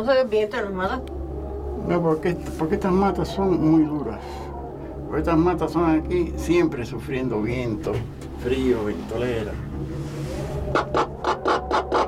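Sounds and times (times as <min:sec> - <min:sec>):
low hum of moving cabin: 0:00.0 - 0:12.0.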